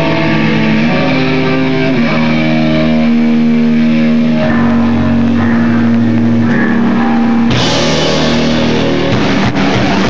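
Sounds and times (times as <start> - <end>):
distorted electric guitar chords: 0.0 - 10.0.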